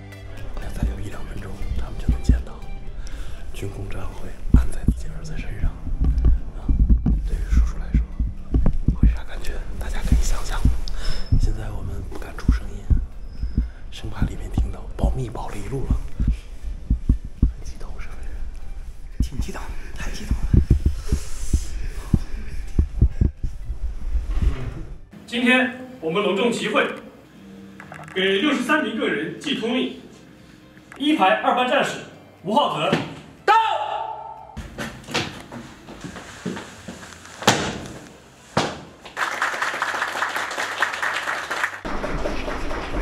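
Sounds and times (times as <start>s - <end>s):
dull low thumps: 0.6s - 1.1s, 1.9s - 2.7s, 4.3s - 17.8s, 19.1s - 25.1s
sharp thumps: 6.0s - 9.2s
roomful of people clapping: 38.7s - 43.0s.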